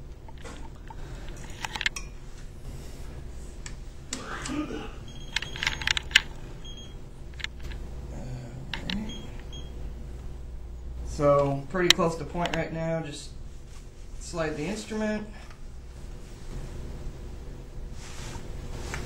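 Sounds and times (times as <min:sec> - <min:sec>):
low room hum: 0:00.0 - 0:19.0
person coughing: 0:04.2 - 0:05.0.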